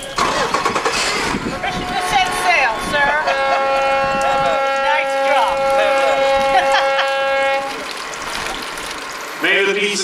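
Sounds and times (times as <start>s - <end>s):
boat horn: 1.6s - 7.9s.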